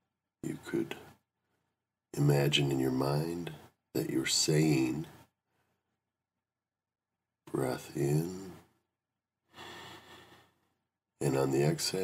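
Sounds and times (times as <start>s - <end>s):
person breathing in: 9.5s - 10.6s.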